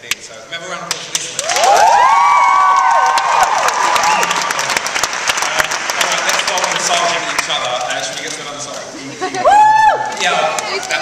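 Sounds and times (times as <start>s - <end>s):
audience applauding: 1.4s - 8.4s
high-pitched cheering shrieks: 1.5s - 4.5s.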